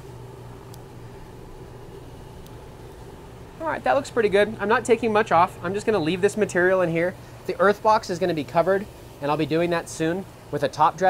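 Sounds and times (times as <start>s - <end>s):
fan humming: 0.0s - 11.0s.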